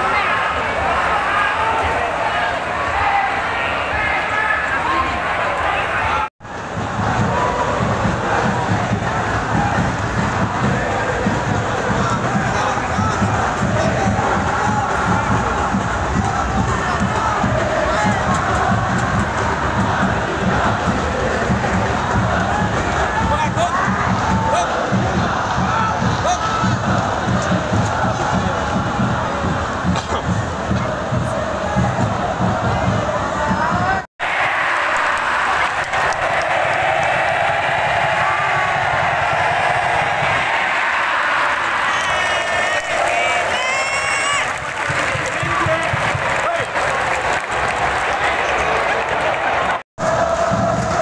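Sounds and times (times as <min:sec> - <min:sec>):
stadium crowd chanting and cheering: 0:00.0 - 0:51.0.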